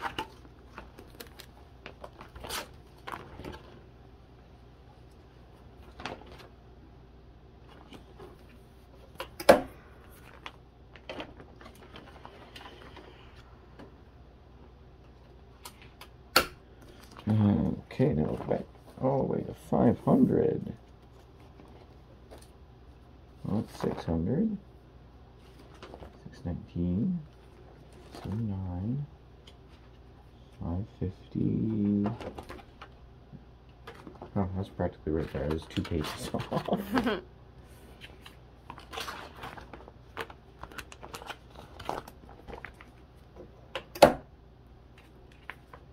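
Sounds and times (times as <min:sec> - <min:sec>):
plastic pages crackling: 0:00.0 - 0:03.9, 0:05.1 - 0:06.6, 0:10.0 - 0:13.4, 0:25.4 - 0:26.3, 0:31.6 - 0:33.0, 0:33.8 - 0:37.2, 0:37.9 - 0:43.5, 0:44.9 - 0:45.9
sharp plastic snap: 0:15.6 - 0:16.6
person speaking: 0:17.2 - 0:20.9, 0:26.2 - 0:27.4, 0:28.2 - 0:29.2, 0:30.4 - 0:32.4.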